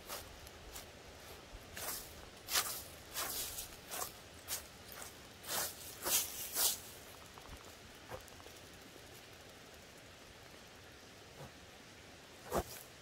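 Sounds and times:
leaves crunching and rustling: 0:00.0 - 0:08.3.

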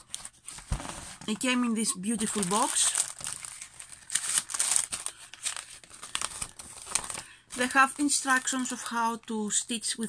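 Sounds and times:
plastic and paper crinkling: 0:00.0 - 0:09.6.

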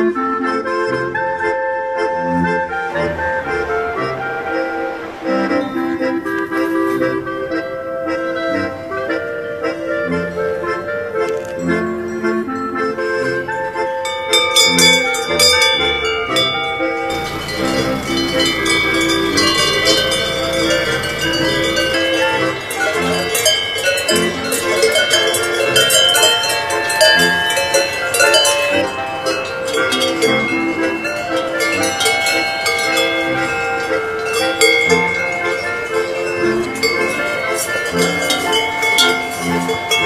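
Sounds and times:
folk music with accordion chords: 0:00.0 - 0:40.0
cowbells ringing: 0:11.5 - 0:40.0.

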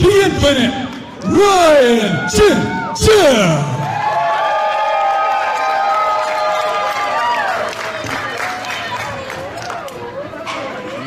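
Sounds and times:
announcer shouting over pa: 0:00.0 - 0:03.8
crowd cheering: 0:00.8 - 0:10.8.

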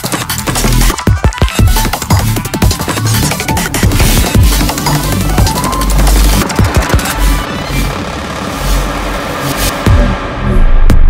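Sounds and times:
glitchy electronic music: 0:00.0 - 0:11.0.

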